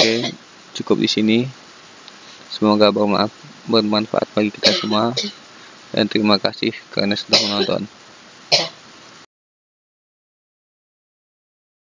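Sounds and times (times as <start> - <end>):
faint microphone hiss: 0.0 - 9.3
man clearing throat: 4.6 - 5.4, 7.3 - 7.9.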